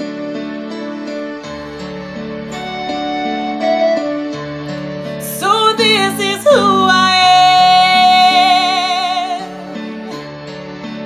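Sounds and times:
instrumental backing track chords: 0.0s - 11.0s.

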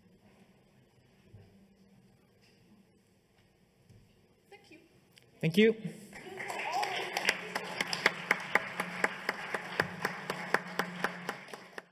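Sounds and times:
audience applause: 6.2s - 11.9s.

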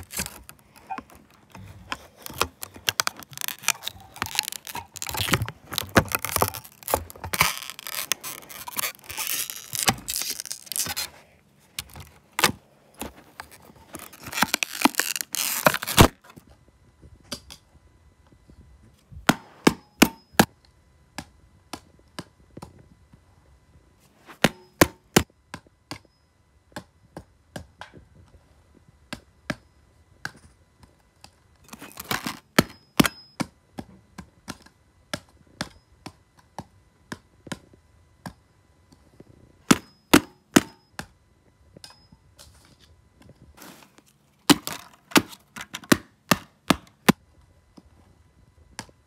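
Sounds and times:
plastic disc cracking: 0.0s - 16.3s, 31.7s - 33.1s, 43.6s - 47.2s.

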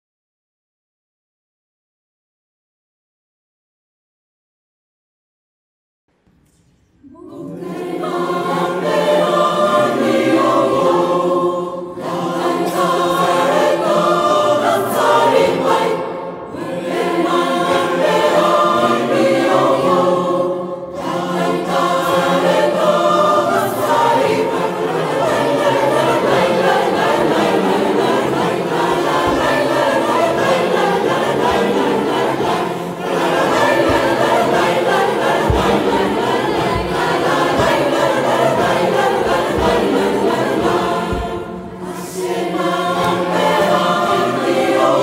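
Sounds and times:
mixed choir singing: 7.0s - 45.0s.

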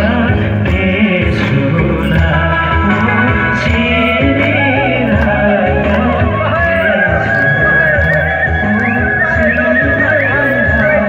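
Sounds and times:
loud dance music: 0.0s - 11.0s.

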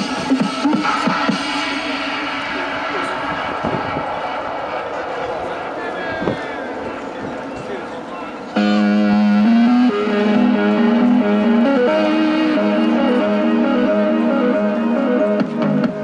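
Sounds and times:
music from portable loudspeaker: 0.0s - 3.9s, 8.6s - 16.0s
street voices: 0.0s - 16.0s.

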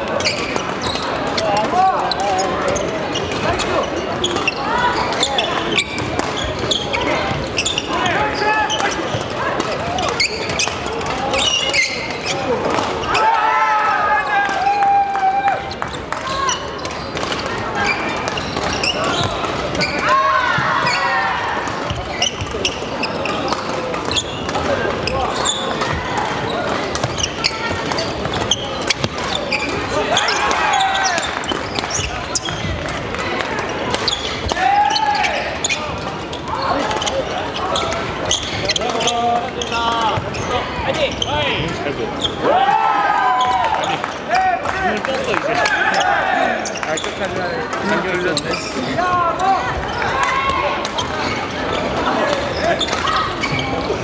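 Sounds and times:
echoing voices and chatter: 0.0s - 54.0s
rackets striking shuttlecocks: 4.2s - 6.7s, 16.1s - 35.0s.

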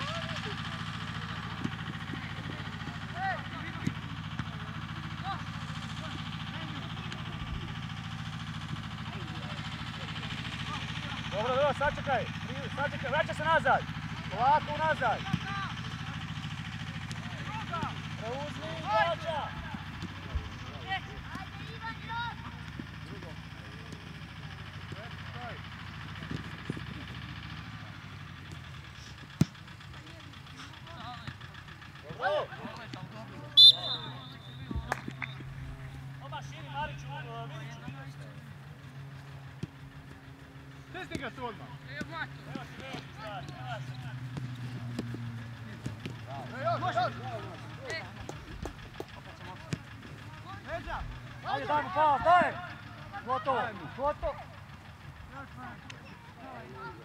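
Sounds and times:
players shouting: 0.0s - 38.2s, 38.9s - 57.0s
ball being kicked: 41.1s - 46.4s.

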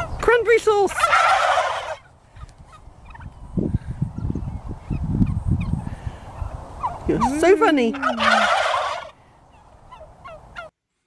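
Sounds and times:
toy turkey gobble: 0.9s - 2.1s, 6.8s - 9.2s.

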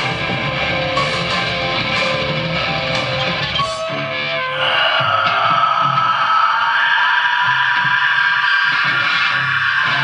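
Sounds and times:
metal band playing: 0.0s - 10.0s.

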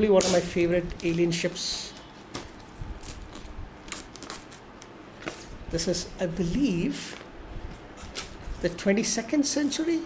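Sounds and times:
plastic packaging crinkling: 0.2s - 5.6s.

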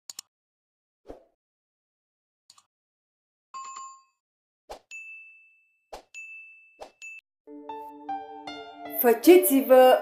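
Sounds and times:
soft sustained music: 7.5s - 10.0s.

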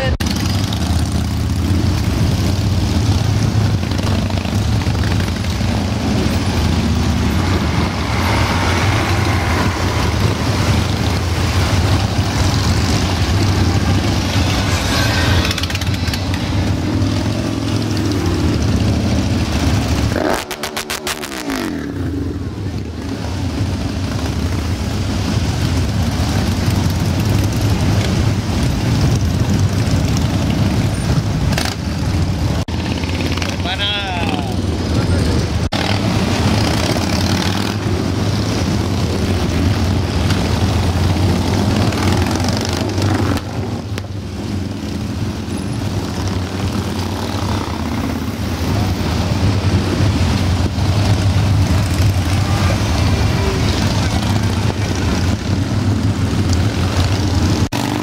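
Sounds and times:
motorcycles rumbling past: 0.0s - 58.0s.

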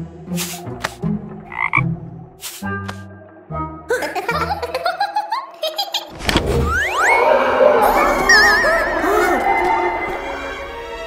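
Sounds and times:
background music: 0.0s - 5.6s, 6.3s - 11.0s
cartoon frog croaking: 1.5s - 1.9s.

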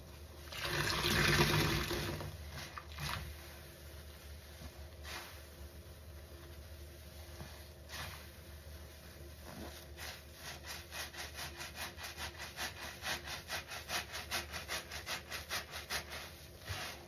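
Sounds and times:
wet sponge squelching: 0.9s - 17.0s.

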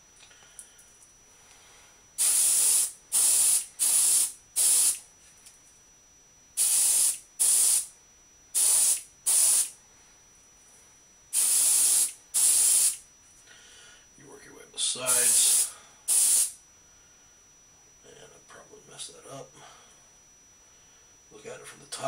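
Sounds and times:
airbrush spraying hissing bursts: 2.2s - 5.0s, 6.6s - 7.9s, 8.6s - 9.7s, 11.4s - 13.0s, 15.1s - 16.6s.

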